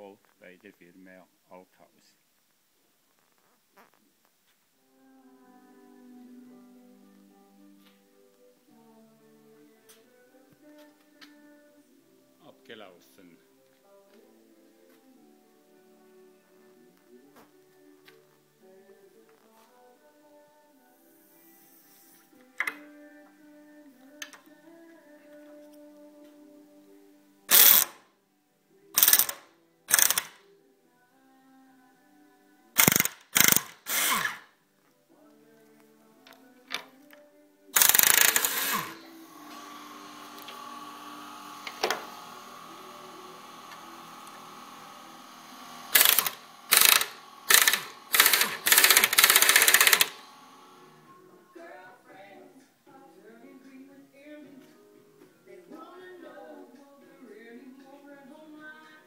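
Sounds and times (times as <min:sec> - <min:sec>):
soft background music: 0:02.9 - 0:59.0
air impact wrench bursts: 0:27.5 - 0:27.9, 0:29.0 - 0:30.3, 0:32.8 - 0:34.4, 0:37.8 - 0:50.9.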